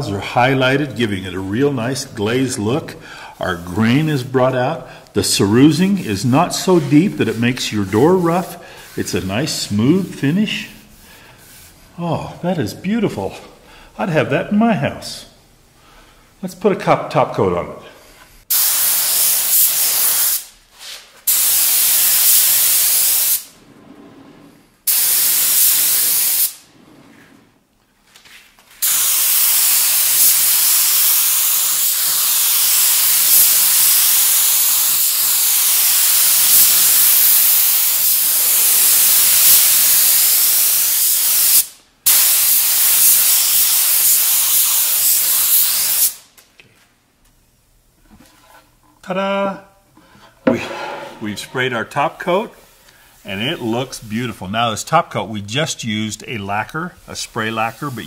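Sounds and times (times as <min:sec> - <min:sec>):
spray gun hissing: 0:18.5 - 0:23.6, 0:24.9 - 0:26.7, 0:28.8 - 0:46.3, 0:57.3 - 0:58.0.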